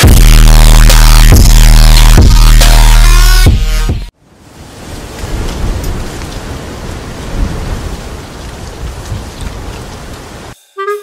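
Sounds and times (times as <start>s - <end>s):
steady rain: 4.1s - 10.6s.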